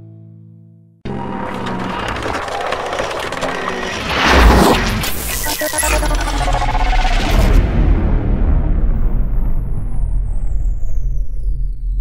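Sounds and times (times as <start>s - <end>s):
rapid clicks: 1.1s - 7.1s
glitchy electronic buzzing: 1.1s - 7.6s.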